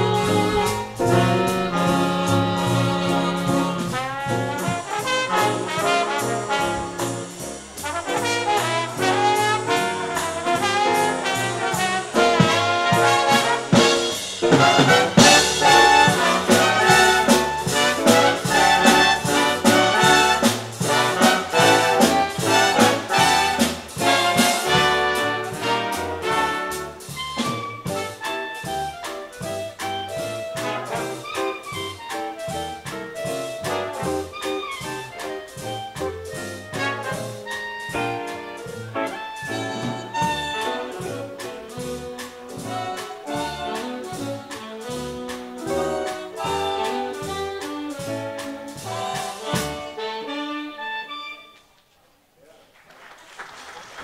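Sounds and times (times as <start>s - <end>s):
swing big band playing: 0.0s - 51.8s.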